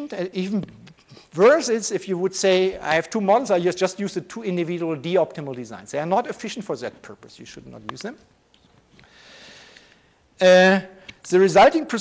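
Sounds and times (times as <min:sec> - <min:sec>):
man speaking: 0:00.0 - 0:08.3, 0:10.4 - 0:12.0
faint short in-breath: 0:09.0 - 0:10.2.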